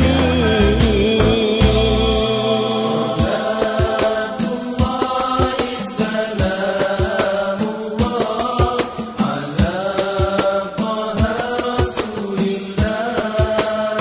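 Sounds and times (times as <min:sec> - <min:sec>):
hand-drum strikes: 0:00.0 - 0:14.0
male voices singing a chant: 0:00.0 - 0:14.0.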